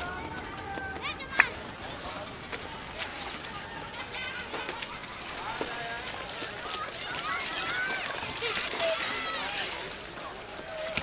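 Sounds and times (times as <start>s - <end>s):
busy street background: 0.0s - 11.0s
voices: 0.0s - 11.0s.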